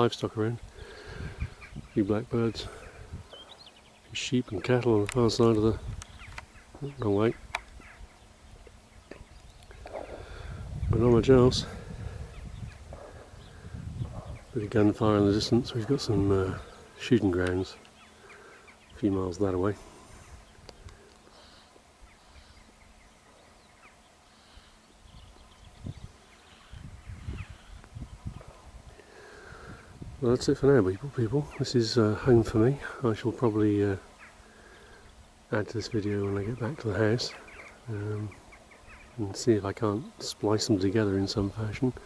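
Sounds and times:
wind buffeting microphone: 0.6 - 3.8, 4.6 - 16.8, 25.0 - 31.6
short bird calls: 5.9 - 10.9, 17.8 - 19.1, 19.8 - 29.9, 34.0 - 39.2.

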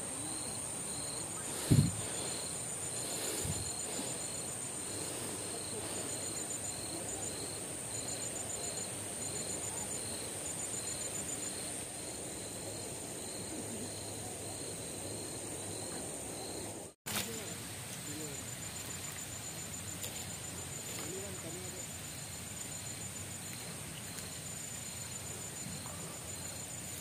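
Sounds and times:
insect chirping: 0.0 - 27.0
insect trills: 0.0 - 27.0
insects high whine: 0.0 - 27.0.

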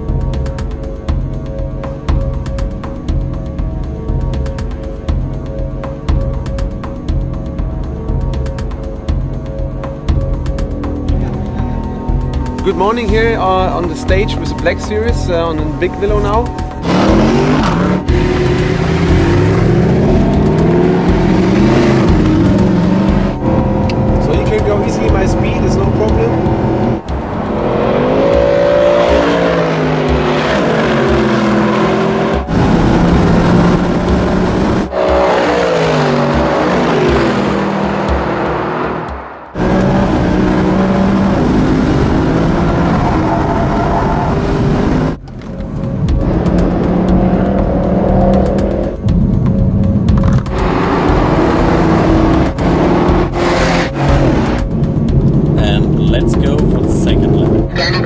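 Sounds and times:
car engines revving hard: 11.0 - 58.0.

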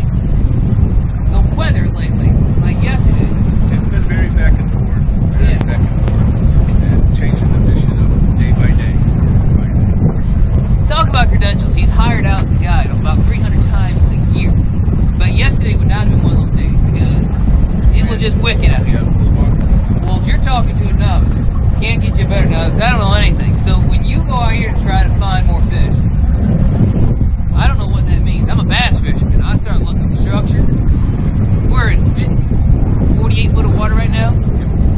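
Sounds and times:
wind buffeting microphone: 0.0 - 34.9
men talking: 1.3 - 14.5, 15.2 - 26.0, 27.6 - 30.7, 31.6 - 32.4, 33.0 - 34.6.

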